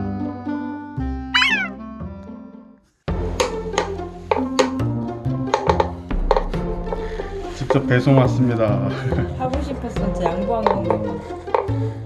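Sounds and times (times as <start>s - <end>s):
background music: 0.0s - 12.0s
cat meowing: 1.4s - 1.8s.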